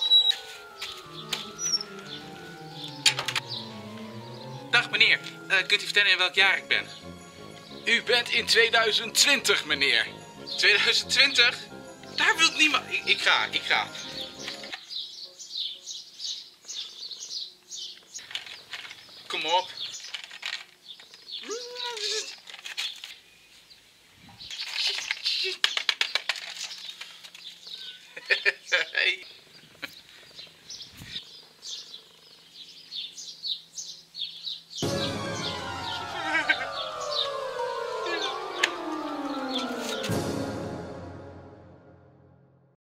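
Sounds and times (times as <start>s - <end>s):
small bird chirping: 0.0s - 2.9s, 14.0s - 20.2s, 20.8s - 25.7s, 26.5s - 34.8s
music: 0.0s - 14.8s, 34.8s - 42.8s.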